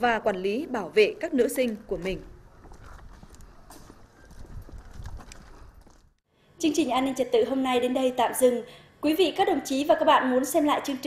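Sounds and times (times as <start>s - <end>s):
footsteps on dirt ground: 1.7s - 6.2s.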